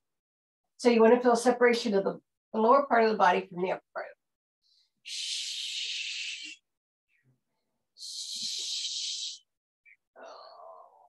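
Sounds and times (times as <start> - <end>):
woman breathing hissing: 5.0 - 6.6, 8.0 - 9.5.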